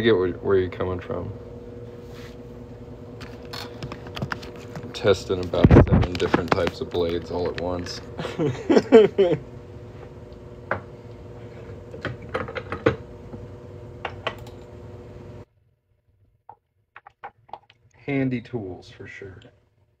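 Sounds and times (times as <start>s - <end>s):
steady hum: 0.0s - 15.5s
person laughing: 8.2s - 9.5s.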